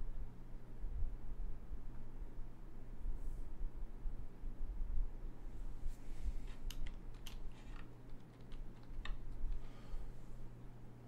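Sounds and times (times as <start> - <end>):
steady low hum: 0.0 - 11.0
light clicks and taps: 6.5 - 9.7.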